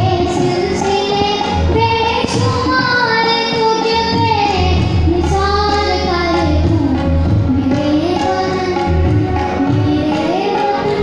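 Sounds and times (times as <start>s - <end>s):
boy singing into microphone: 0.0s - 11.0s.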